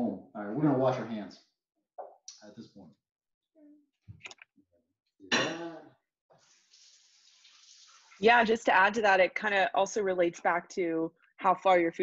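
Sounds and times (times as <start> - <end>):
faucet running faintly: 6.3 - 8.7.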